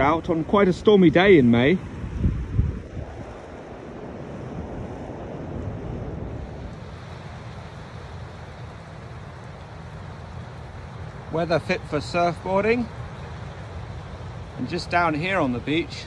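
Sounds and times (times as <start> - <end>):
waves breaking on shore: 0.0 - 16.0
wind rumbling on microphone: 0.0 - 16.0.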